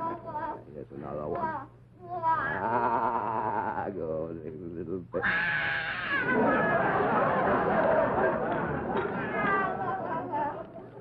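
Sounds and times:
audience laughing: 6.2s - 11.0s.

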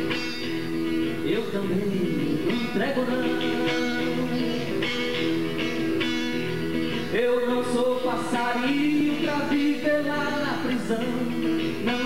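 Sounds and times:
acoustic guitar strumming: 0.0s - 12.0s
man singing: 1.1s - 5.5s, 6.9s - 12.0s.

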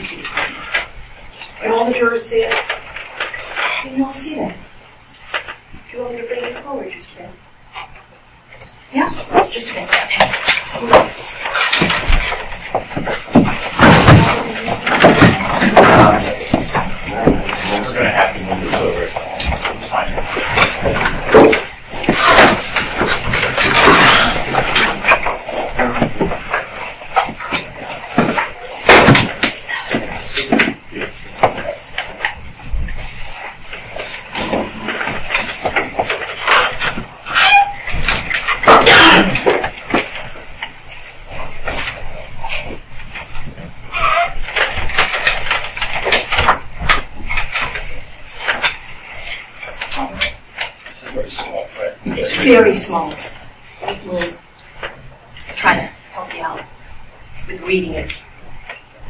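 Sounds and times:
rustling: 8.9s - 59.0s
handling knocks and bumps: 9.4s - 40.8s.

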